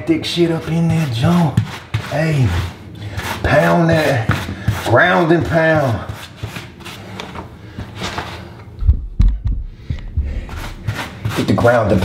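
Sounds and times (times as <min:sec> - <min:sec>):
grout float scraping tile joints: 0:00.1 - 0:08.5, 0:10.5 - 0:12.0
dull deep thumps: 0:08.8 - 0:10.6.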